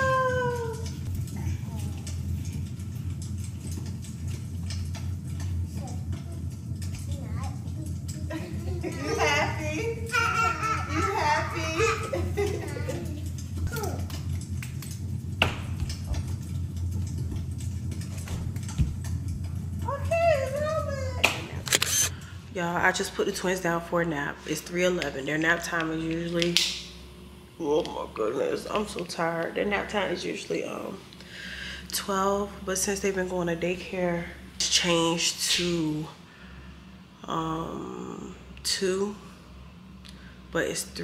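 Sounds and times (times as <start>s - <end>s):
low hum: 0.0s - 41.0s.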